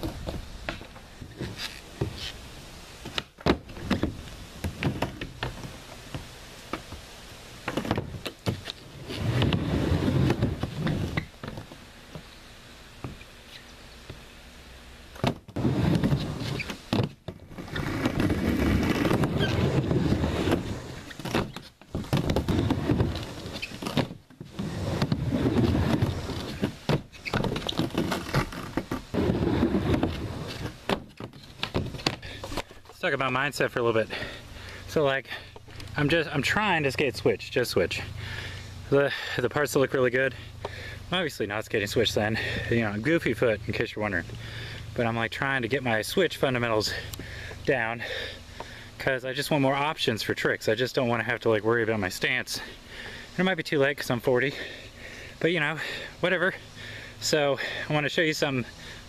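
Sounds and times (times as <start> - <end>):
skateboard wheels rolling on wood: 0.0 - 12.4, 13.0 - 14.3, 15.1 - 38.4, 39.1 - 47.2.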